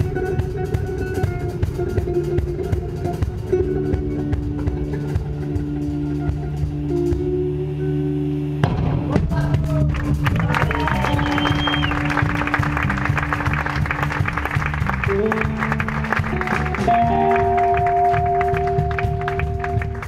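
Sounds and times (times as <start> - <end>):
fast busy drumming: 0.0 - 7.4, 8.6 - 20.0
electric bass: 0.0 - 20.0
electric guitar held notes: 10.8 - 20.0.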